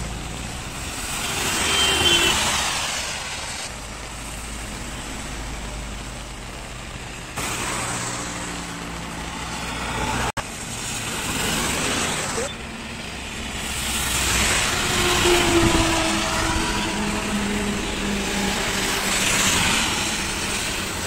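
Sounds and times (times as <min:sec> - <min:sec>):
engines of passing vehicles: 0:00.0 - 0:21.0
tyres hissing on wet road: 0:00.0 - 0:21.0.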